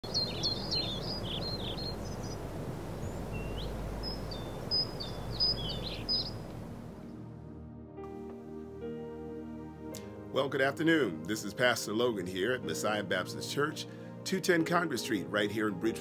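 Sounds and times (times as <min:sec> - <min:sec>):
outdoor background noise: 0:00.0 - 0:07.3
songbirds chirping: 0:00.0 - 0:07.3
soft music with sustained tones: 0:03.0 - 0:16.0.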